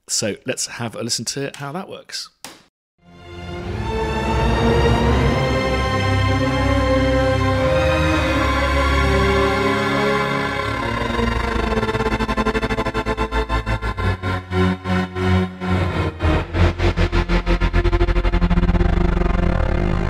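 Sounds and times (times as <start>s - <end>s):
string band playing stuttering riff: 3.3s - 20.0s.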